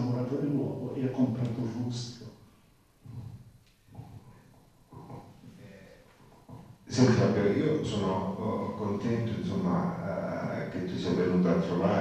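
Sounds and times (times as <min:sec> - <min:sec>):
man speaking: 0:00.0 - 0:02.4, 0:04.9 - 0:06.1, 0:06.9 - 0:12.0.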